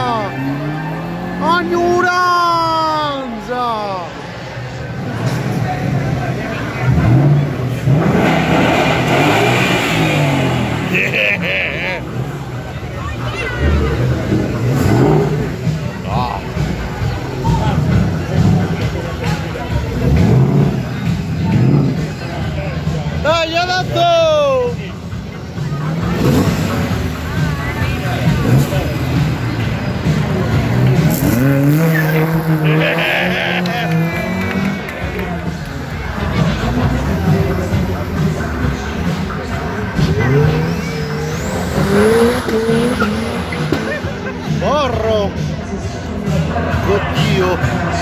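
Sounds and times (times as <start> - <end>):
car engine rumbling: 0.0 - 48.0
people talking: 0.0 - 48.0.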